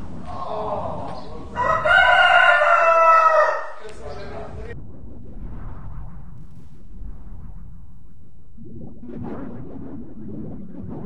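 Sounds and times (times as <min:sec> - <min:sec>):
rooster crowing: 0:00.3 - 0:04.4.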